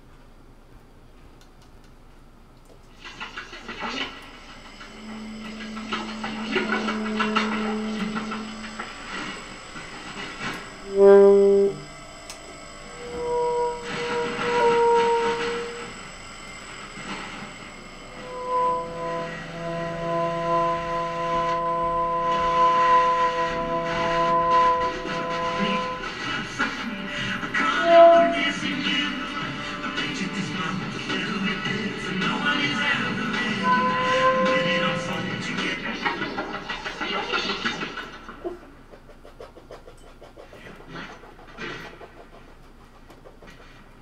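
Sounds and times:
tenor saxophone: 4.9s - 9.4s, 10.5s - 16.1s, 18.1s - 30.2s.

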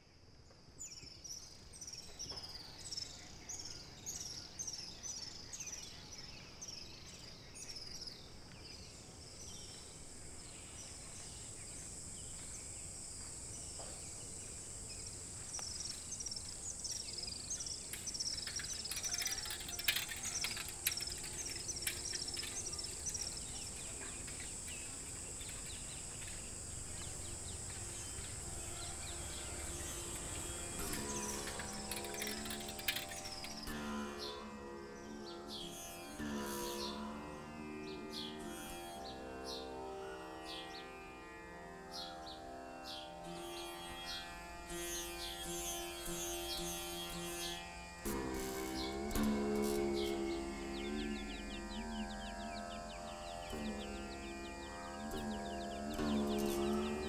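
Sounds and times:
high insect drone: 0.4s - 57.0s
bird chirping: 0.8s - 37.0s, 42.9s - 57.0s.

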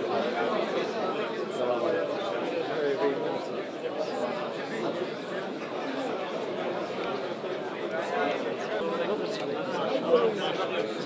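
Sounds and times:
chatter of many men: 0.0s - 11.0s.

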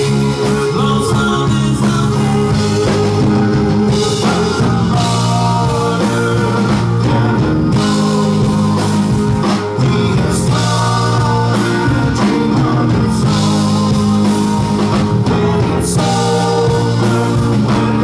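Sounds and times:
electric bass: 0.0s - 18.0s
electric guitar: 0.0s - 18.0s
person singing: 0.0s - 18.0s.

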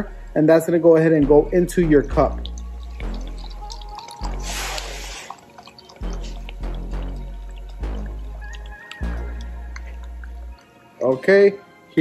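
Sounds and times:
background music: 0.0s - 12.0s
deep bass notes: 1.2s - 5.2s, 6.0s - 10.6s
liquid pouring into plastic cup: 1.6s - 11.3s.

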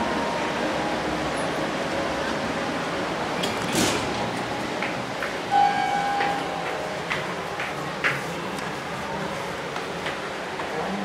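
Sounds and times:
steady background noise: 0.0s - 11.0s
elevator chime: 5.5s - 6.9s.

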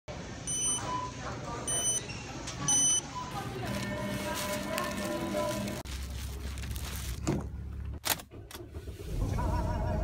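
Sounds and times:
store noise: 0.1s - 10.0s
self-checkout machine beeps: 0.4s - 4.8s.

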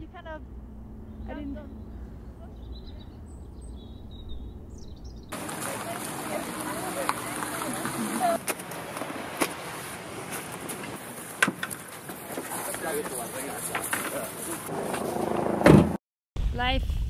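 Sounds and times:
outdoor background noise: 0.0s - 17.0s
low voices: 5.4s - 8.5s
loud thump: 15.4s - 16.0s.

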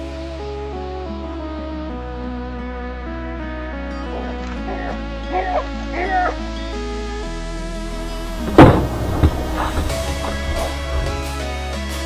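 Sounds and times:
background music: 0.0s - 12.0s
skateboard knocking on road: 8.4s - 11.4s
skateboarder falling on asphalt: 8.4s - 11.4s.

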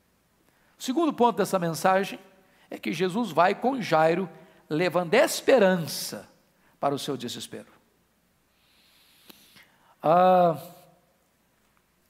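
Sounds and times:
man breathing in: 8.5s - 10.0s.

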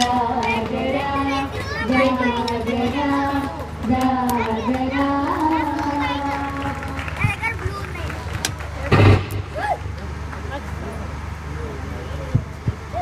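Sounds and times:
scattered voices: 0.0s - 13.0s
brief loud burst: 8.9s - 9.8s.

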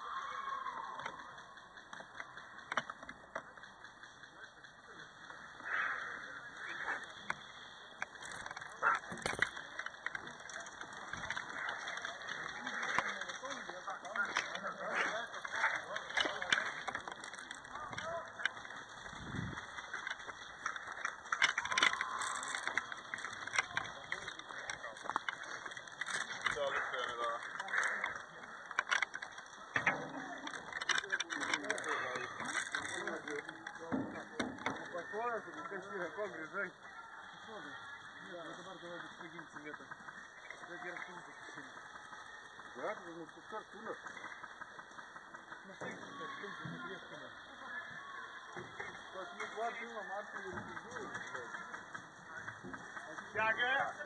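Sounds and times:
distant indistinct voices: 0.0s - 54.0s
rustle of movement: 1.0s - 54.0s.

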